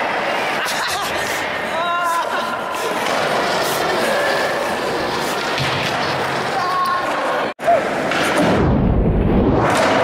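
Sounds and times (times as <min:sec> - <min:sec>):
skateboards rolling on hard floor: 0:02.8 - 0:08.6, 0:09.6 - 0:10.0
skateboard impacts on floor: 0:05.4 - 0:06.8.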